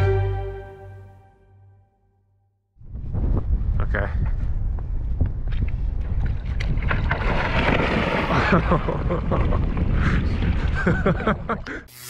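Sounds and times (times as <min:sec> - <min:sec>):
wind buffeting microphone: 0:02.8 - 0:11.6
water splashing and sloshing: 0:06.0 - 0:11.4
person laughing: 0:08.3 - 0:09.8, 0:10.7 - 0:11.9.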